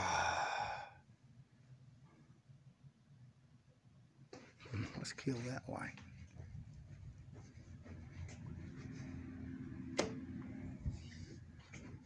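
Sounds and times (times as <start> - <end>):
person sighing: 0.0 - 1.0.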